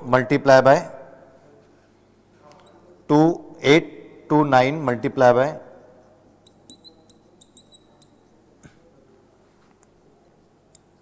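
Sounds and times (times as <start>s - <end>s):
marker squeaking on a whiteboard: 6.4s - 8.2s.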